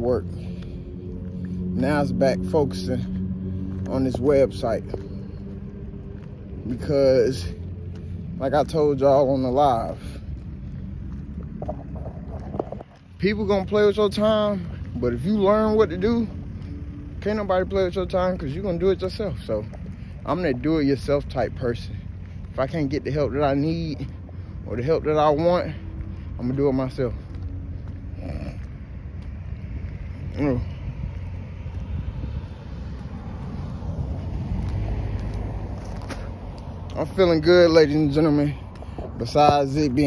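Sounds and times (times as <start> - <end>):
low outdoor rumble: 0.0 - 40.0
wind buffeting microphone: 1.6 - 13.7, 19.2 - 40.0.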